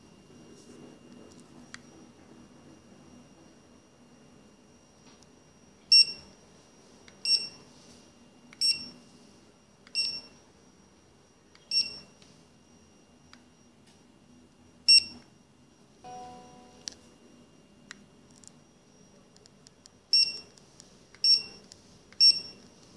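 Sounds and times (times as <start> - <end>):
barcode scanner beeps: 5.9 - 6.3, 7.1 - 7.7, 8.5 - 9.0, 9.8 - 10.4, 11.5 - 12.2, 14.8 - 15.3, 16.1 - 17.2, 20.0 - 20.6, 21.2 - 22.8
lower longer tone: 16.1 - 17.0.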